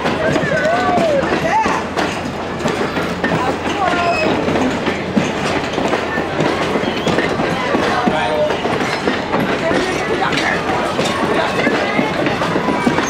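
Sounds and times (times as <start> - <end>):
train wheels rumbling on rails: 0.0 - 13.0.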